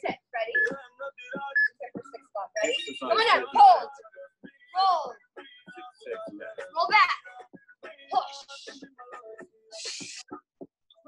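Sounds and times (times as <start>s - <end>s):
voices: 0.0s - 4.1s
background music: 0.0s - 11.0s
interval timer beeping: 0.5s - 1.9s, 2.6s - 3.8s.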